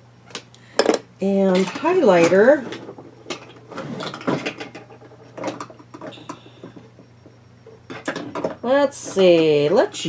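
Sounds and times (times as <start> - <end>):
makeup containers clattering: 0.8 - 7.0, 7.6 - 10.0.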